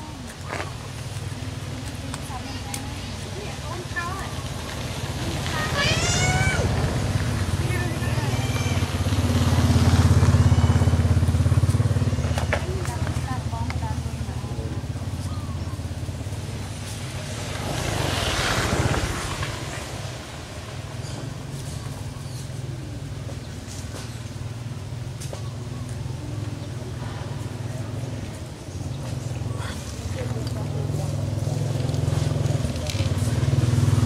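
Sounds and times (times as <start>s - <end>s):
vehicle engine passing by: 2.9s - 25.0s, 25.9s - 34.0s.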